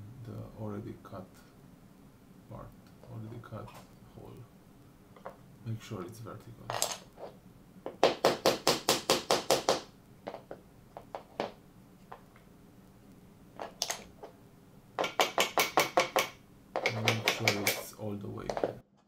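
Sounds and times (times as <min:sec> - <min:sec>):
hammer tapping plywood: 0:07.9 - 0:09.9.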